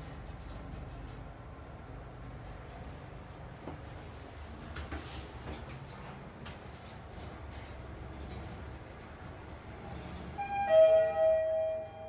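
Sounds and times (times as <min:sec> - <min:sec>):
lift car rumble: 0:00.0 - 0:12.0
elevator two-note chime: 0:10.4 - 0:12.0.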